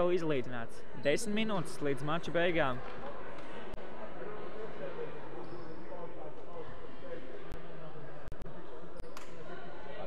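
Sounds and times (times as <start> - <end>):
indistinct voices in echoing hall: 0.0 - 10.0.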